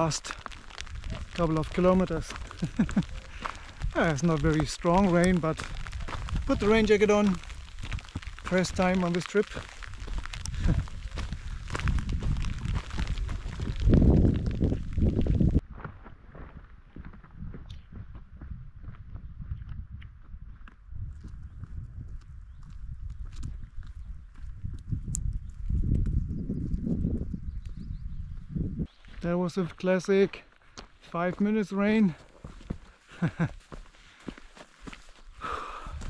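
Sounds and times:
trekking poles tapping on gravel: 0.0s - 15.6s
footsteps on gravel: 0.0s - 24.9s, 28.8s - 36.0s
wind rumble on microphone: 0.0s - 29.2s, 34.8s - 36.0s.

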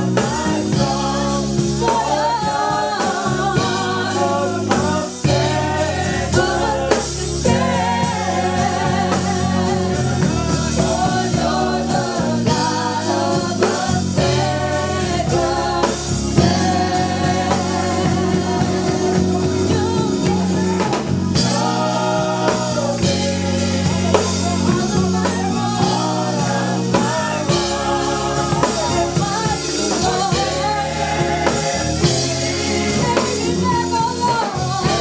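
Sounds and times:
gospel choir singing: 0.0s - 35.0s
sustained low instrumental notes: 0.0s - 35.0s.

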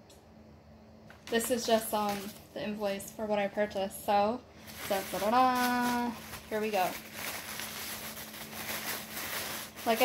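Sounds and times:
faint steady hum: 0.0s - 10.0s
plastic wrap crinkling: 1.1s - 3.0s, 4.6s - 10.0s.

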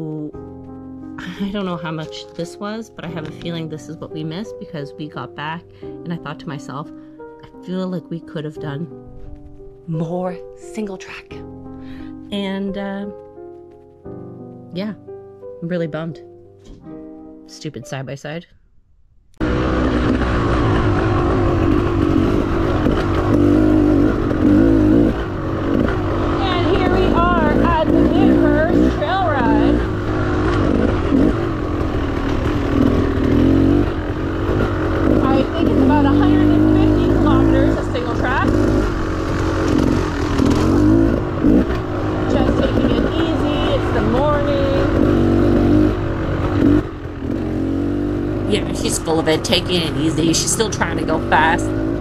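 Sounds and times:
dirt bike engine revving: 19.4s - 52.0s.

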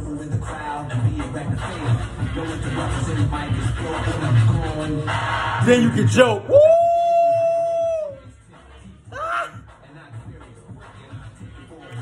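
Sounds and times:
man shouting woo: 5.6s - 8.3s, 9.1s - 9.6s.

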